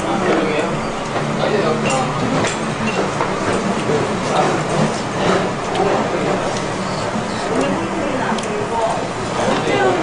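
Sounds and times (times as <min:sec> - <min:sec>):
restaurant din: 0:00.0 - 0:10.0.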